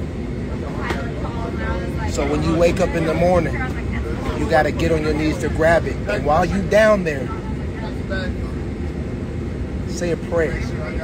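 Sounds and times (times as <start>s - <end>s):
airplane cabin drone: 0.0s - 11.0s.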